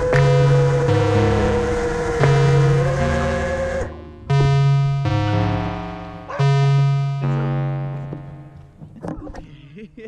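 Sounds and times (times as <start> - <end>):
electronic pop music: 0.0 - 8.8.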